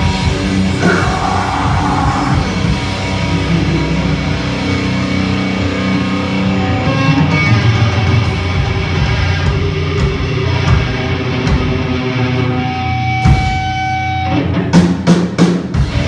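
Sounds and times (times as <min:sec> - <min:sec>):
electric guitar: 0:00.0 - 0:16.0
live metal band playing: 0:00.0 - 0:16.0.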